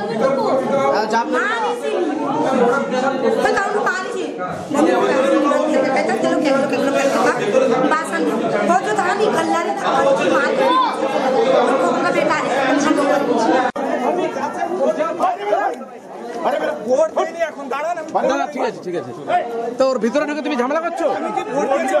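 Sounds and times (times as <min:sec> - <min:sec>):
men talking over one another: 0:00.0 - 0:22.0.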